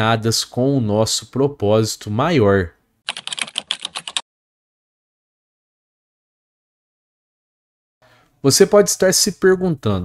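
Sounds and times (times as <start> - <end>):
keyboard typing: 3.1 - 4.2.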